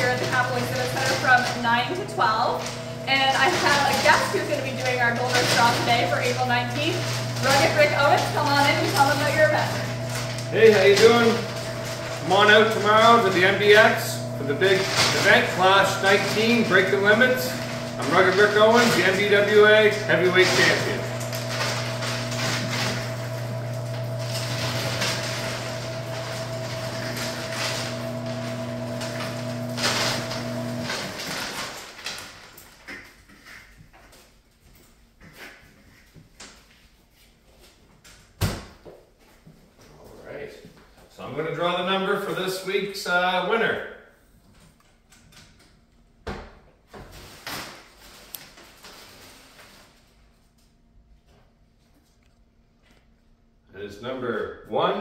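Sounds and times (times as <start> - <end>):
steady motor hum: 0.0 - 31.6
paper tickets tumbling: 0.0 - 32.6.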